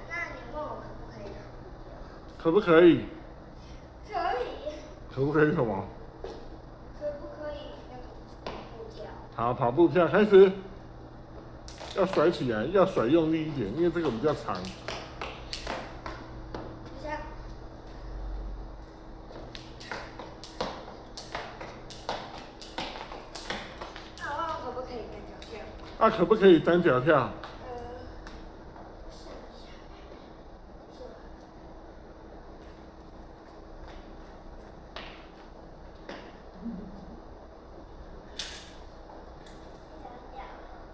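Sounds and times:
steady low hum: 0.0 - 40.9
jump rope tapping on concrete: 11.7 - 12.4, 13.7 - 16.7, 19.3 - 24.6.

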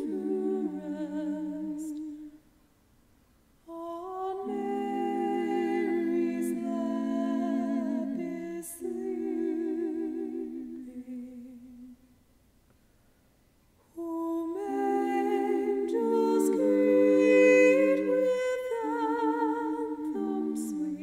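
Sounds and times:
women singing a cappella harmony: 0.0 - 2.5, 3.6 - 12.1, 13.9 - 21.0.

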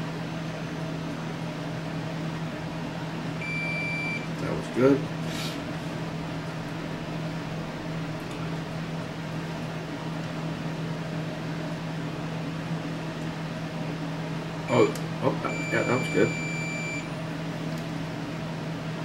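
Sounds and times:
multimeter beeping: 3.4 - 4.2, 15.5 - 17.1.

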